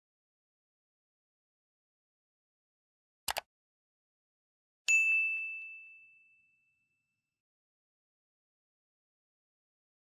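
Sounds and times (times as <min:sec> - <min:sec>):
bright bell ding: 0:04.9 - 0:07.1.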